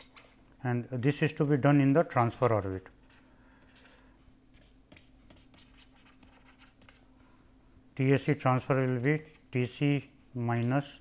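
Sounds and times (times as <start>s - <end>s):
stylus scratching and tapping: 1.3s - 7.1s.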